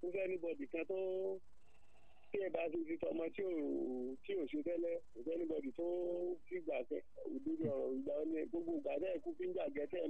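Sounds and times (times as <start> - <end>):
person talking: 0.0 - 1.4, 2.4 - 10.0.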